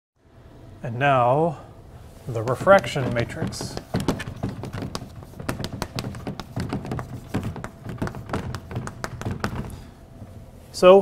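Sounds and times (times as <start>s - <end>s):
chalk tapping and scratching on blackboard: 2.4s - 9.8s.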